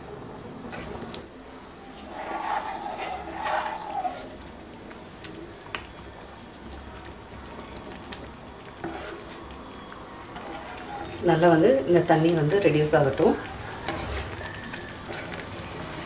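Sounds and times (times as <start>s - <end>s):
metal ladle scraping pan: 1.9s - 4.5s, 8.8s - 9.5s, 10.3s - 11.4s, 13.8s - 16.0s.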